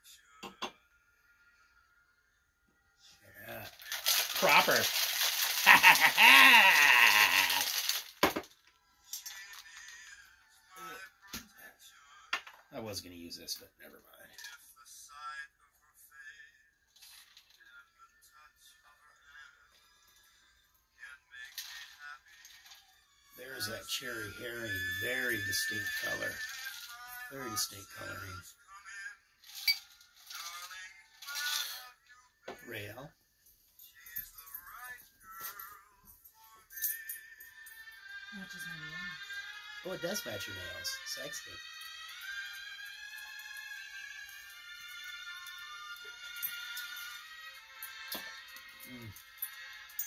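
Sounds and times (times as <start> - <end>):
ice rattling in cocktail shaker: 3.5 - 8.5
man laughing: 5.5 - 7.7.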